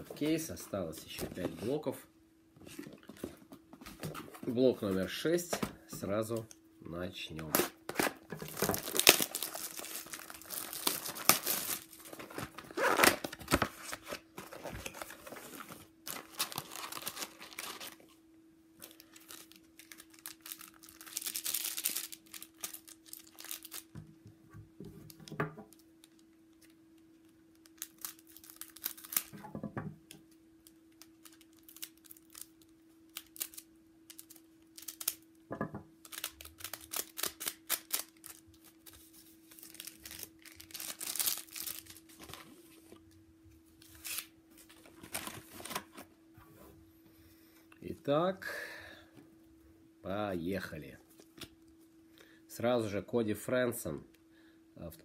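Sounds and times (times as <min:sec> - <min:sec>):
paper and wrappers crinkling: 0:07.4 - 0:18.2, 0:18.8 - 0:24.0, 0:27.5 - 0:29.4, 0:31.0 - 0:35.2, 0:36.0 - 0:43.0, 0:43.8 - 0:46.0
scissors cutting packs: 0:36.1 - 0:38.4.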